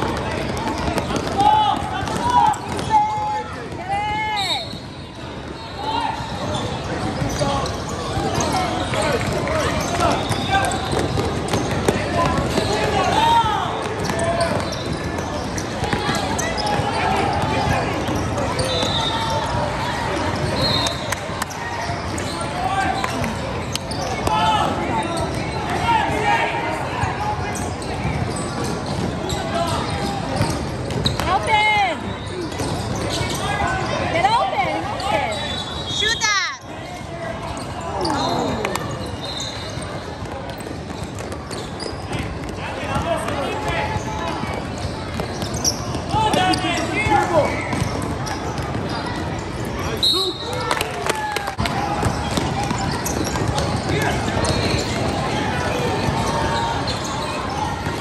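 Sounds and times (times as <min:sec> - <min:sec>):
basketball bouncing on court: 0:00.0 - 0:03.9, 0:06.2 - 0:21.0, 0:27.6 - 0:31.6, 0:32.4 - 0:33.8, 0:37.5 - 0:49.8, 0:51.6 - 0:58.0
crowd voices and shouts: 0:00.0 - 0:58.0.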